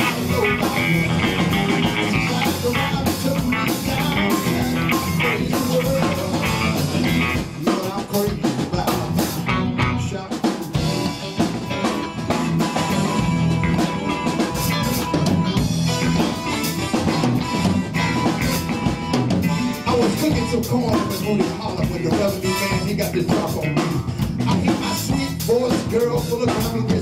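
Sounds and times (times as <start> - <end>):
drum kit beat: 0.0 - 27.0
electric bass: 0.0 - 27.0
electric guitar: 0.0 - 27.0.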